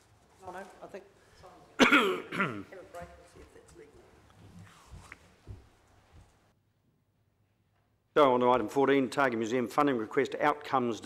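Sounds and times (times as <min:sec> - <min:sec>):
man clearing his throat: 0:01.8 - 0:02.7.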